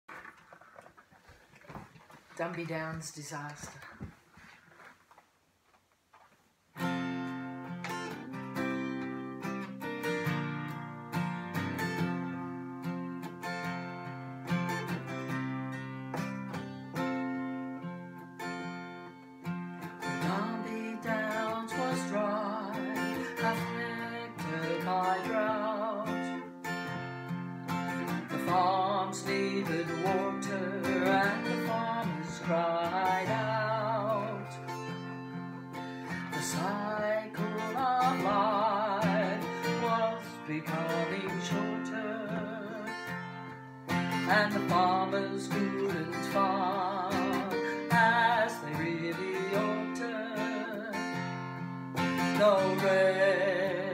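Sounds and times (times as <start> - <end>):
strummed acoustic guitar: 6.8 - 53.9
woman singing: 20.2 - 26.5, 28.1 - 34.7, 36.4 - 43.1, 44.2 - 51.2, 52.3 - 53.9.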